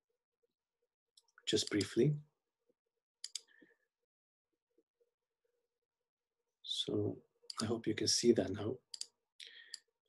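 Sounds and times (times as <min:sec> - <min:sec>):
computer mouse double-click: 0:03.2 - 0:03.5.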